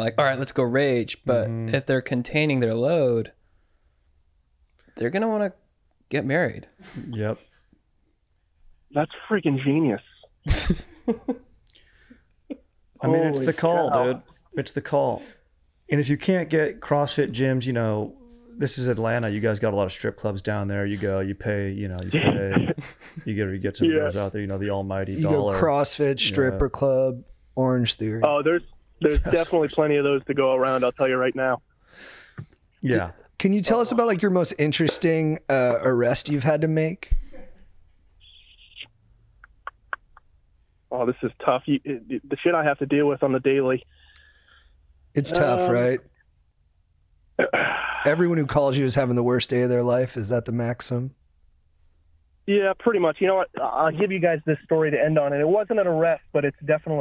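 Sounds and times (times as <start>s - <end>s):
man laughing: 10.4s - 11.5s, 22.0s - 24.2s, 47.4s - 48.3s.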